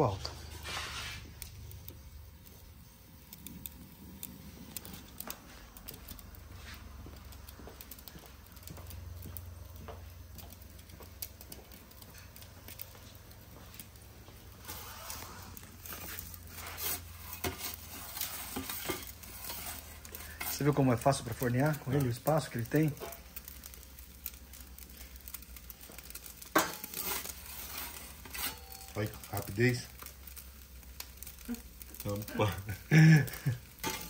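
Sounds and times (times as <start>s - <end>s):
gas burner low rumble: 0.0s - 34.0s
pizza crackling and clicking: 0.0s - 34.0s.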